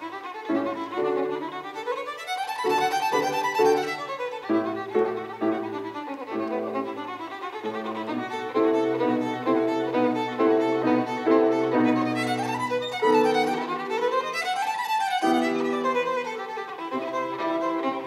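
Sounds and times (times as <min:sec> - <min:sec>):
bowed violin: 0:00.0 - 0:18.0
grand piano: 0:00.0 - 0:18.0.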